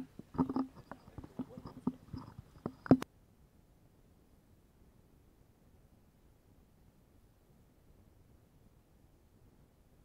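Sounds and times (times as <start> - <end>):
soft irregular knocks and clicks: 0.0 - 3.1.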